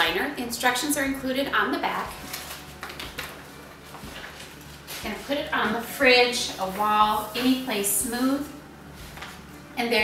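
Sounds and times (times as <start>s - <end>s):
paper rustling: 2.1s - 5.8s, 9.0s - 9.6s.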